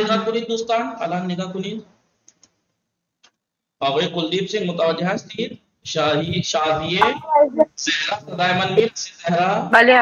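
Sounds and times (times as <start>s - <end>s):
computer mouse clicks: 2.2s - 2.6s
man speaking: 3.8s - 9.7s.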